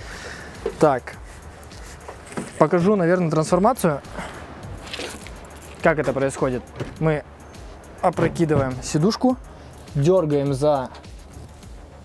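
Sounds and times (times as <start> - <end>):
person shuffling and rustling: 0.0 - 3.0, 4.2 - 6.3.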